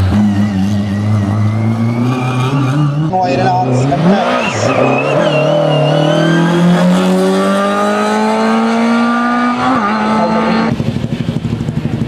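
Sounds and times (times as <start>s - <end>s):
car engine accelerating hard: 0.0s - 12.0s.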